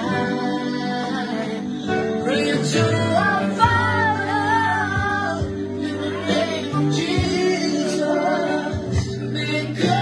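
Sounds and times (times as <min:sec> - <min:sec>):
group singing gospel song: 0:00.0 - 0:10.0
drum beats: 0:03.6 - 0:04.1, 0:04.8 - 0:07.7, 0:08.7 - 0:10.0.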